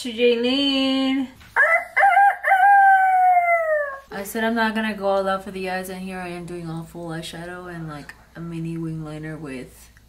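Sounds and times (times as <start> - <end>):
people talking: 0.0 - 1.4, 4.1 - 9.9
rooster crowing: 1.6 - 4.1.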